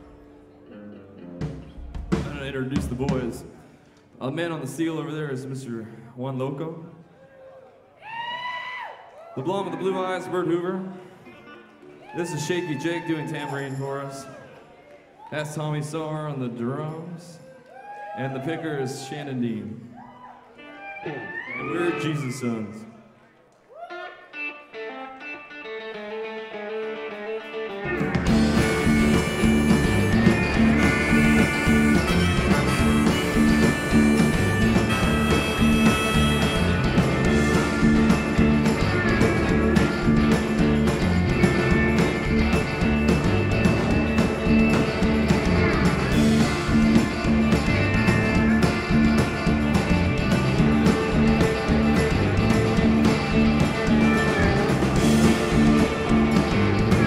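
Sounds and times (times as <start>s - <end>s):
live rock band playing: 0.0s - 3.4s, 24.3s - 57.0s.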